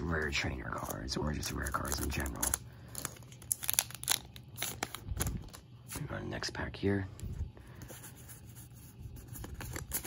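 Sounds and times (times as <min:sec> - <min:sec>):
foil wrapper crinkling: 0:01.6 - 0:05.6.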